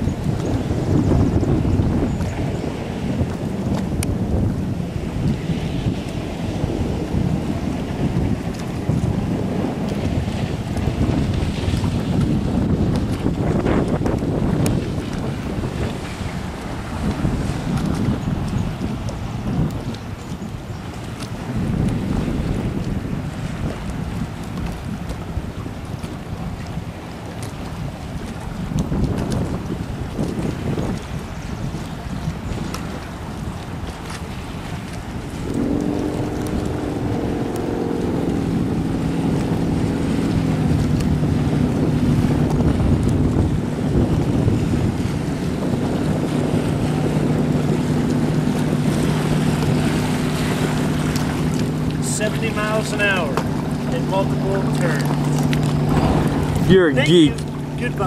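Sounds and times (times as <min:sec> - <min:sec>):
water rushing: 0:00.0 - 0:58.0
watercraft engine humming: 0:00.0 - 0:58.0
wind noise on microphone: 0:00.0 - 0:58.0.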